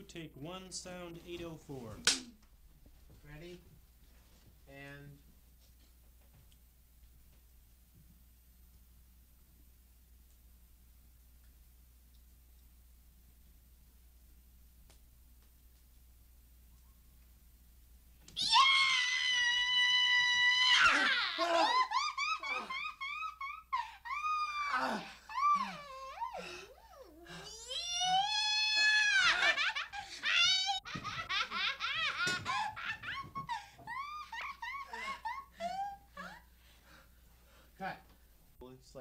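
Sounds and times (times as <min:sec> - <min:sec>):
woman shrieking: 0:18.4 - 0:36.5
woman cackling laughter: 0:21.3 - 0:24.2, 0:29.1 - 0:36.4.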